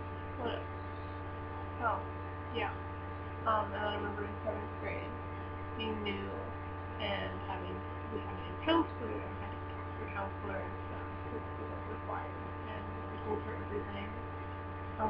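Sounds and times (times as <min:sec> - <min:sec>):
buzzy electrical hum: 0:00.0 - 0:15.0.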